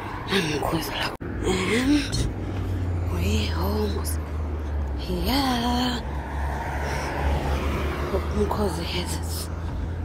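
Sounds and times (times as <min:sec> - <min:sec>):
low traffic rumble: 0:00.0 - 0:10.0
vehicle going by: 0:00.0 - 0:10.0.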